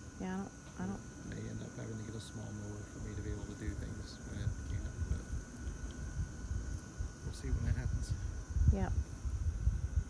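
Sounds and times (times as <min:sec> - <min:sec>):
faint high whine: 0:00.0 - 0:10.0
gusty wind on microphone: 0:03.6 - 0:10.0.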